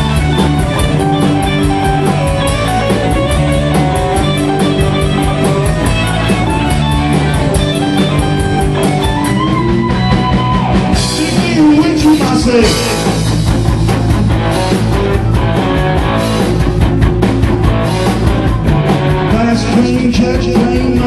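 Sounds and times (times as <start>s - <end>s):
drum kit with cymbal beat: 0.0s - 21.0s
electric guitars: 0.0s - 21.0s.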